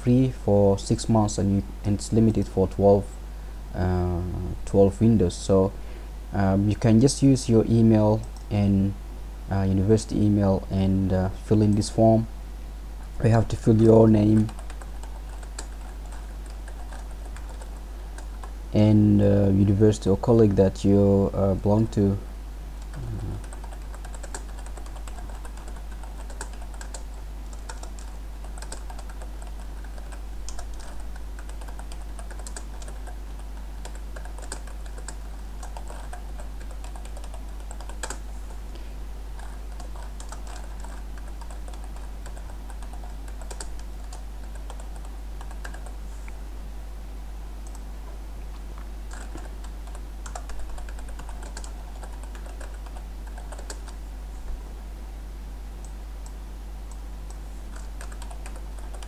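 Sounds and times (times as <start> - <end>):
steady low hum: 0.0 - 59.0
typing on computer keyboard: 14.3 - 18.5, 22.9 - 38.2, 39.4 - 46.0, 49.1 - 54.0, 57.7 - 59.0.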